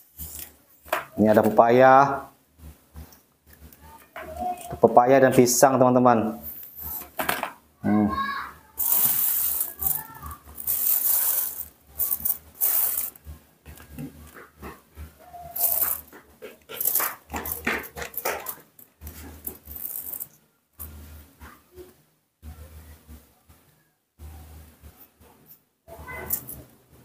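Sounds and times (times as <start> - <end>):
knife scraping fruit seeds: 8.8 - 13.2, 15.5 - 20.4
plastic bag crinkling: 8.8 - 13.2, 15.5 - 16.1, 16.8 - 20.3.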